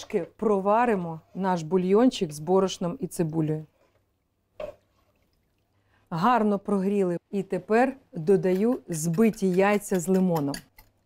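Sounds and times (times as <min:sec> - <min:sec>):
broth sloshing in a saucepan: 0:00.8 - 0:06.1.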